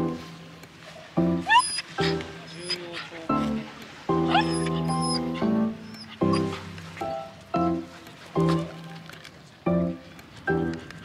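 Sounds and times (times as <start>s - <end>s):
background music: 0.0s - 11.0s
dog whining: 1.4s - 3.2s, 4.2s - 6.6s.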